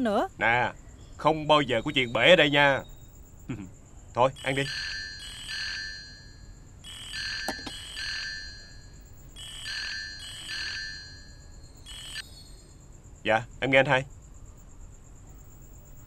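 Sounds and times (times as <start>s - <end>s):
mobile phone ringing: 4.4s - 12.2s.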